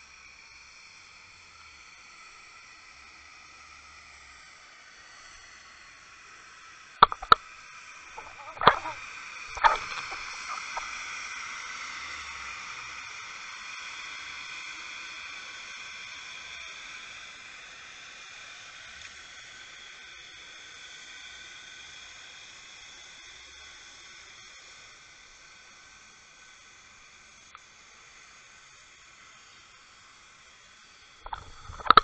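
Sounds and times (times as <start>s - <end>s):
steady underwater hiss: 0.0s - 32.0s.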